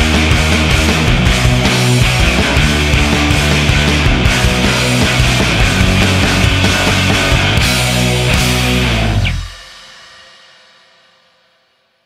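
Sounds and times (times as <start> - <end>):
guitar chord ringing: 0.0 - 9.8
rock band music: 0.0 - 9.9.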